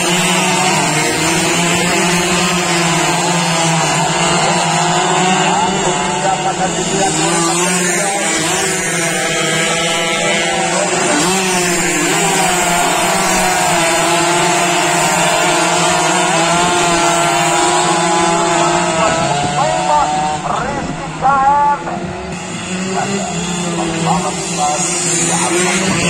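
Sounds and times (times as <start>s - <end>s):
racing motorcycles revving: 0.0s - 26.0s.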